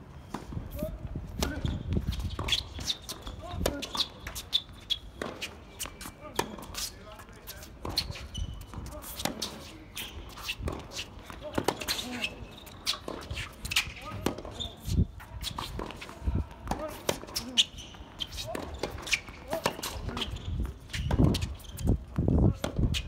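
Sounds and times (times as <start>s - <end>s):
tennis ball bouncing on court: 1.4s - 6.8s, 7.6s - 9.7s, 10.3s - 12.1s, 12.8s - 21.6s, 22.5s - 23.0s
tennis ball hit by racket: 10.3s - 12.2s, 18.4s - 20.3s.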